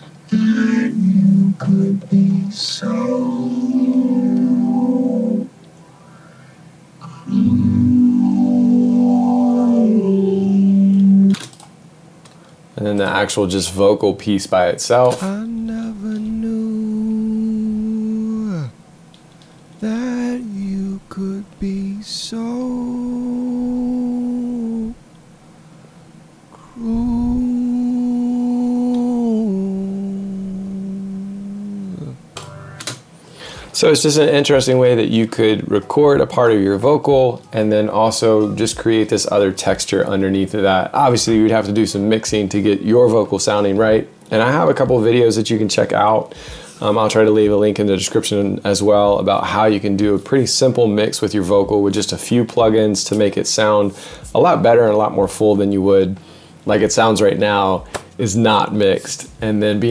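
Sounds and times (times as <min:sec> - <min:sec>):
man singing a long note: 0:00.3 - 0:05.5, 0:07.1 - 0:11.4, 0:15.3 - 0:18.8, 0:19.8 - 0:25.0, 0:26.6 - 0:32.2
robotic vocoder chords: 0:00.3 - 0:11.4, 0:32.4 - 0:32.9.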